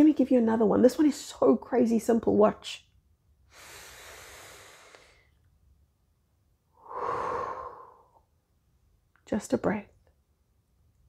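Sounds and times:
woman breathing deeply: 3.5s - 5.4s, 6.7s - 8.3s.

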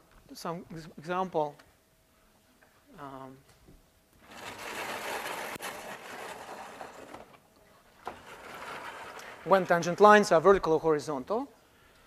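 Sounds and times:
scraping on a blackboard: 4.2s - 7.4s, 8.1s - 10.0s.

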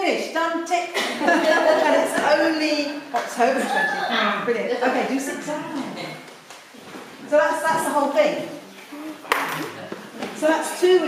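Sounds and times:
people talking: 0.0s - 6.3s, 7.2s - 11.0s.

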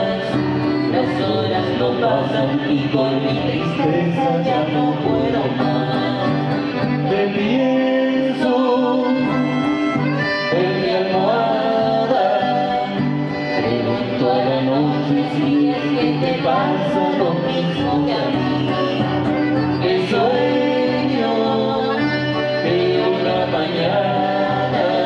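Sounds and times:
button accordion melody: 0.0s - 25.0s
young man singing: 0.0s - 25.0s.

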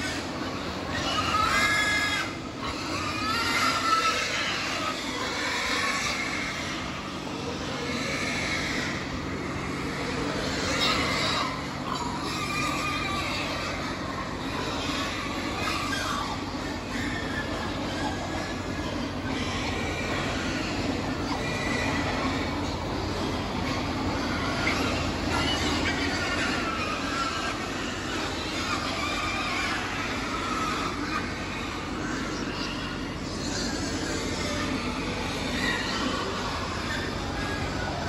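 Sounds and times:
high pig squeals: 0.0s - 38.0s
pigs noisy din: 0.0s - 38.0s
steady low hum: 0.0s - 38.0s.

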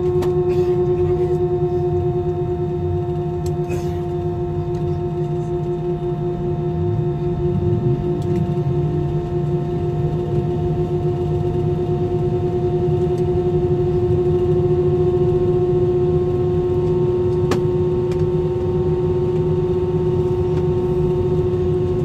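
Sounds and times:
jet engines humming in cabin: 0.0s - 22.0s.

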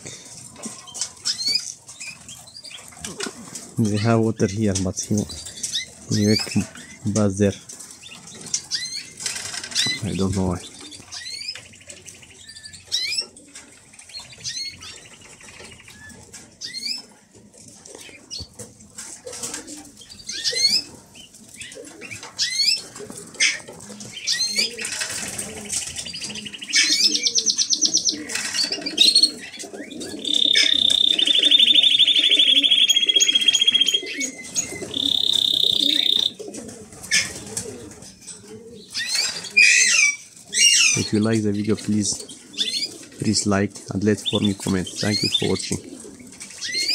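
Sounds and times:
songbirds chirping and trilling: 0.0s - 46.9s.

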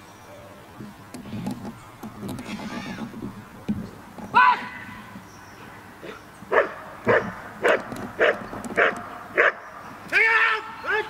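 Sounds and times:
dog barking: 6.5s - 9.6s.

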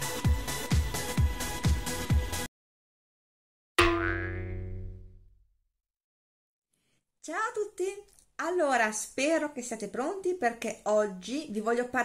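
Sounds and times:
ringing struck musical hit: 3.8s - 4.9s.

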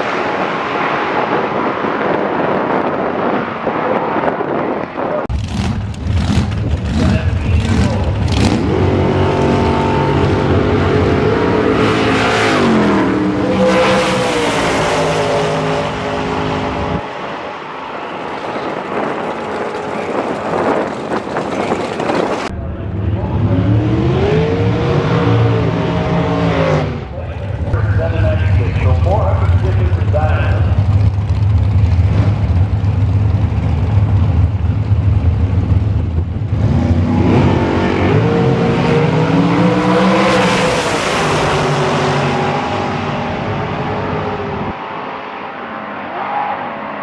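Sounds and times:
drag racing engines accelerating: 0.0s - 47.0s
engine revving: 5.3s - 17.0s, 21.4s - 32.8s, 36.4s - 44.8s.

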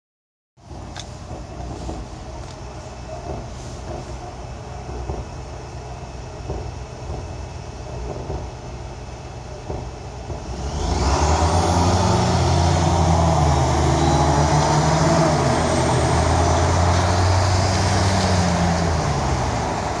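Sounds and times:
car engine accelerating hard: 9.7s - 20.0s.

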